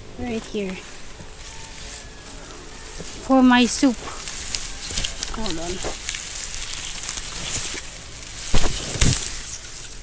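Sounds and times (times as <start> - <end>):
dry grass rustling and crackling: 0.0 - 10.0
heavy thumps: 8.4 - 9.5.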